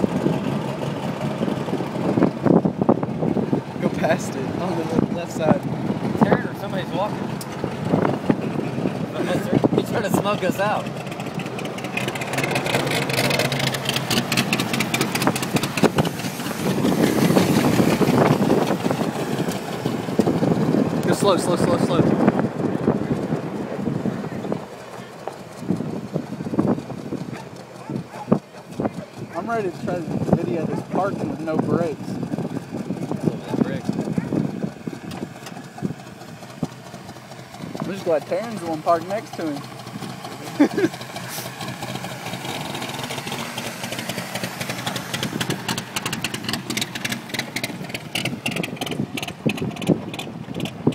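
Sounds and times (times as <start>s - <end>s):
wind noise on microphone: 0.0s - 38.2s, 39.8s - 50.9s
pickup truck engine running: 0.0s - 50.9s
people talking and laughing: 8.4s - 10.6s, 40.2s - 41.5s.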